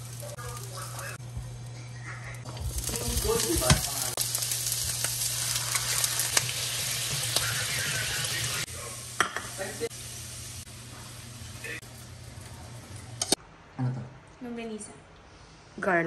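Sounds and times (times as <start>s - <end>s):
food sizzling in hot oil: 0.0s - 1.2s, 2.4s - 13.4s.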